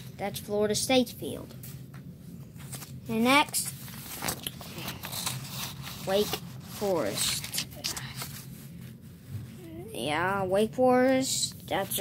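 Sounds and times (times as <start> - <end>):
paper sheets rustling: 2.5 - 8.8, 11.7 - 12.0.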